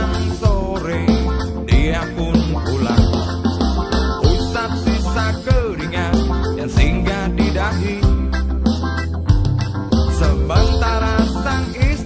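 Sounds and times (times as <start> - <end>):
person singing: 0.0 - 8.5, 10.0 - 12.0
acoustic guitar: 0.0 - 12.0
low bass line: 0.0 - 12.0.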